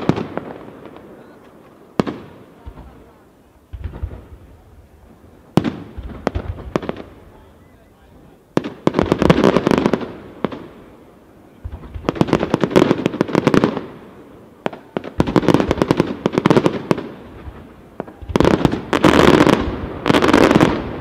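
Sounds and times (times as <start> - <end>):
firework bangs: 0.0 - 21.0
firework crackling volleys: 0.0 - 21.0.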